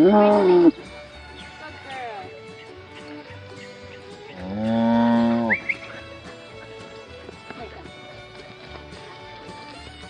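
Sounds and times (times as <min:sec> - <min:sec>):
cow mooing: 0:00.0 - 0:00.8, 0:04.4 - 0:05.6.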